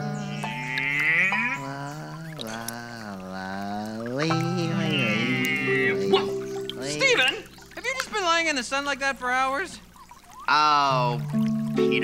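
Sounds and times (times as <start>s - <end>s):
background music: 0.0s - 2.2s, 4.2s - 7.8s, 10.9s - 12.0s
person humming a tune: 0.0s - 7.4s.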